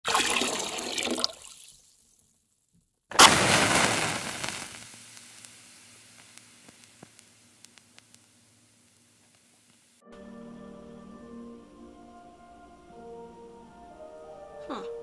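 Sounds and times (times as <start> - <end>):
faint ticks: 5.2 - 10.0.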